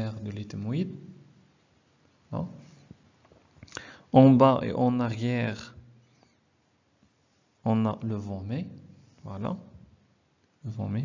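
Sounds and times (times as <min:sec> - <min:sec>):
in-breath: 0:03.7 - 0:04.1.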